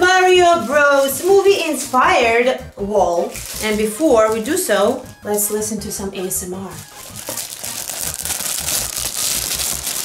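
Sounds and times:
fingers crinkling sticker sheets: 0.4s - 2.0s, 3.3s - 4.7s, 6.8s - 10.0s.

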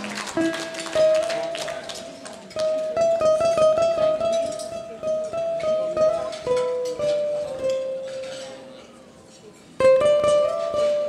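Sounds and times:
ukulele picked melody: 0.0s - 8.5s, 9.8s - 11.0s.

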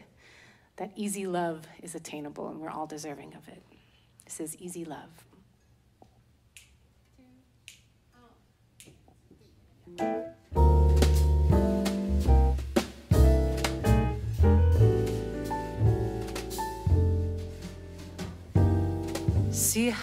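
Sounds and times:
soft finger snaps: 6.5s - 6.8s, 7.6s - 8.0s, 8.8s - 9.2s
jazz combo with piano and bass: 9.9s - 20.0s.

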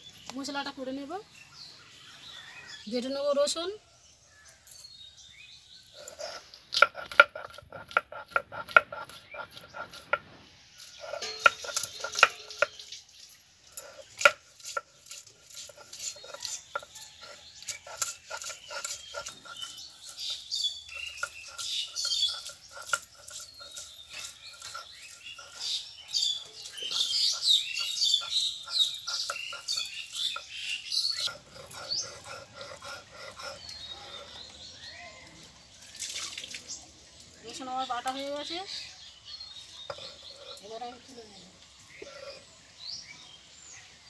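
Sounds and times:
birds chirping: 0.0s - 44.0s.

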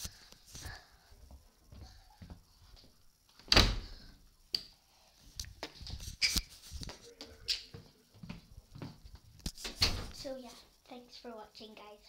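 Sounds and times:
door shutting with a thud: 3.4s - 4.0s, 9.6s - 10.2s.

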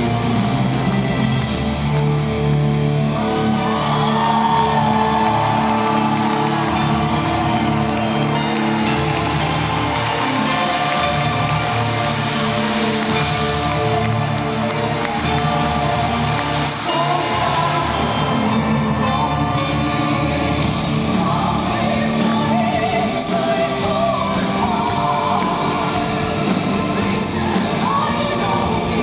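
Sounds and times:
person singing: 13.1s - 29.0s.

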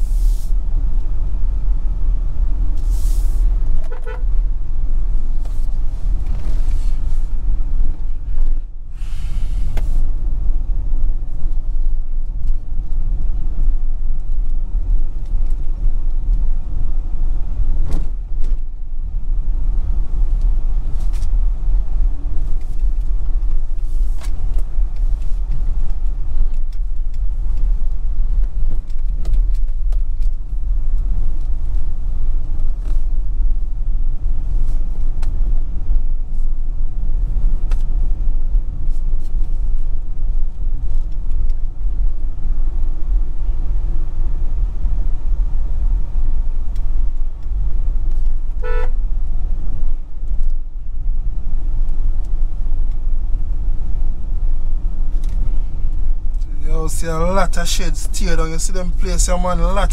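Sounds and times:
vehicle rumbling on rough road: 0.0s - 59.9s.

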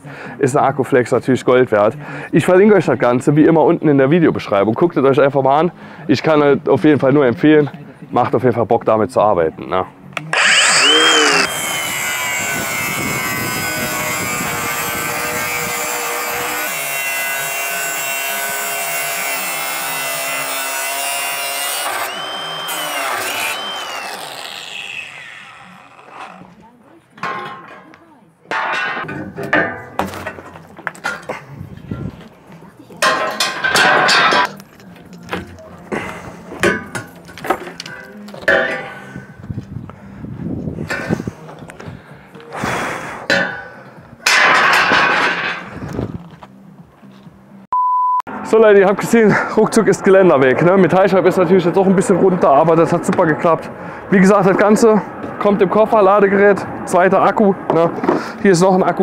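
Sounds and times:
angle grinder cutting metal: 10.2s - 26.5s
metal clanks and knocks: 27.2s - 27.9s, 28.5s - 31.3s, 33.0s - 34.6s, 36.6s - 39.0s, 43.3s - 45.7s.

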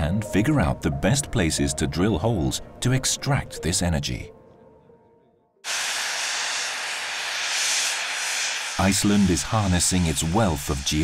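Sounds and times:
steam venting loud hiss: 5.6s - 11.0s.

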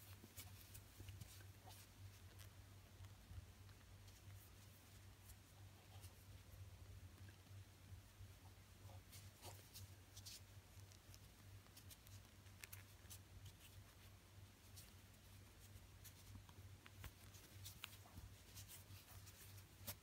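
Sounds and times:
yarn rustling: 8.9s - 20.0s.

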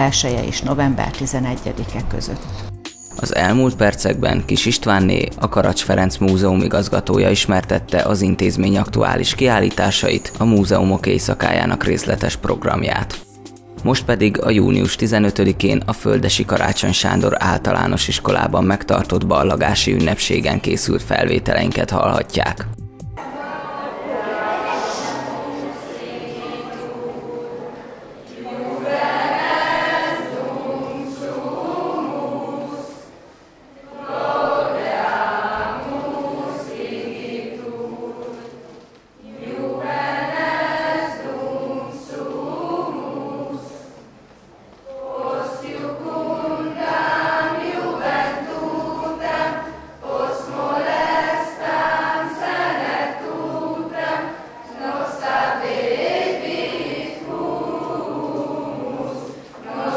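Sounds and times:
choir singing: 23.2s - 59.9s.

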